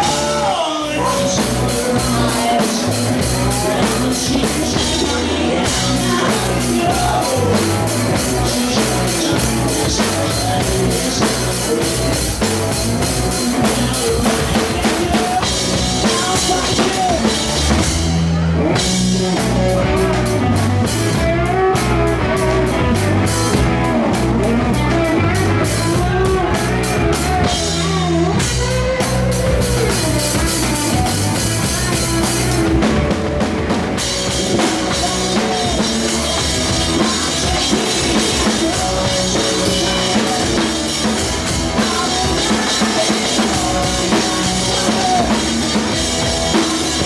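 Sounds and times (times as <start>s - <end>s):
drum kit: 0.0s - 47.0s
electric guitar: 0.0s - 47.0s
man singing: 0.0s - 47.0s.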